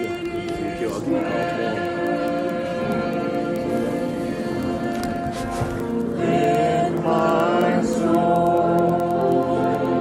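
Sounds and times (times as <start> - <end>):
worship chorus singing with accompaniment: 0.0 - 10.0.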